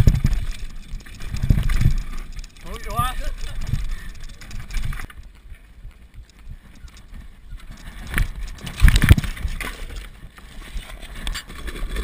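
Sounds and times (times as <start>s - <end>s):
mountain bike rattling on dirt trail: 0.0s - 12.0s
wind on microphone: 0.0s - 12.0s.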